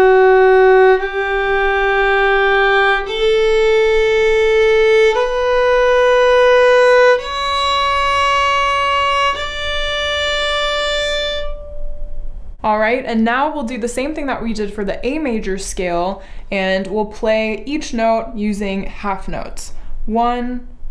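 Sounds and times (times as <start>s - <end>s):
solo violin playing a scale: 0.0s - 12.0s.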